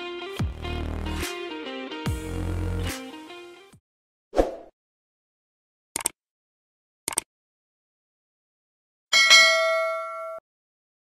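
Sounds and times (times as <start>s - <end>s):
notification bell ding: 9.2s - 10.4s.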